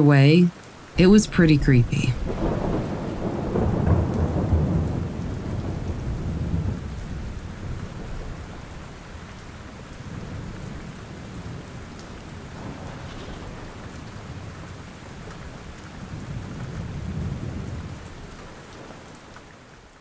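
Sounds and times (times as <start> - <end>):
steady rain falling: 0.0 - 20.0
thunder rumbling: 1.0 - 19.2.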